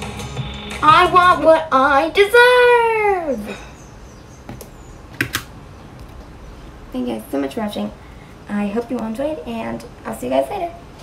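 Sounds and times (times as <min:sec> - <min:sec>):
low steady hiss: 0:05.5 - 0:11.0.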